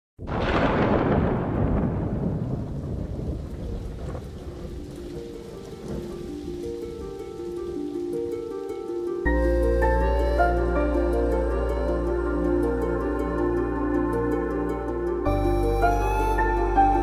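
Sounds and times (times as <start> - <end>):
thunder rumbling: 0.2 - 8.3
heavy rain: 0.2 - 17.0
soft sustained music notes: 4.2 - 17.0.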